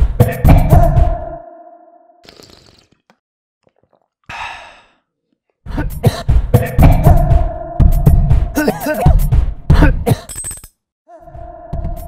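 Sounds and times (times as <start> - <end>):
person sighing: 4.3 - 5.0.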